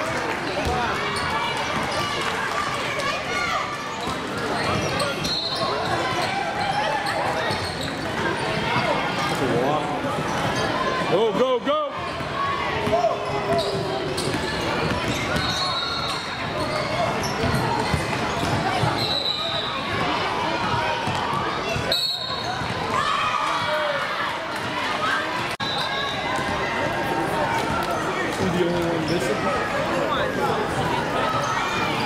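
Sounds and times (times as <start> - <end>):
people talking and shouting: 0.0 - 32.0.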